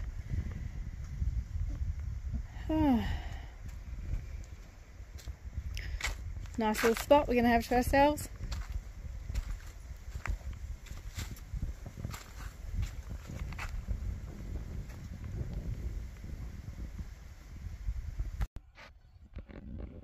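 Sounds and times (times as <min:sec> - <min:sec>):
wind buffeting microphone: 0:00.0 - 0:18.5, 0:19.1 - 0:20.0.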